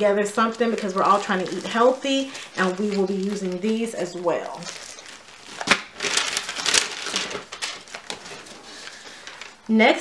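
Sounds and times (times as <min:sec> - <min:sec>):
plastic packaging crinkling: 0:00.0 - 0:09.8.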